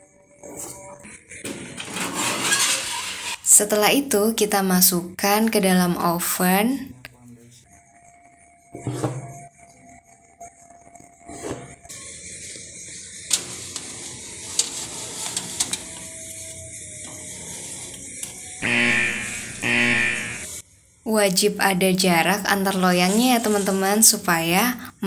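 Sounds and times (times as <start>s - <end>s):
music: 0.0s - 2.6s, 7.0s - 19.8s
metal tins scraping on wire rack: 1.8s - 3.4s.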